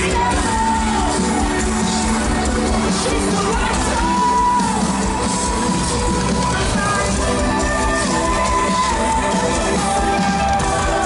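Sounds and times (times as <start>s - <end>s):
live band playing amplified music: 0.0s - 11.0s.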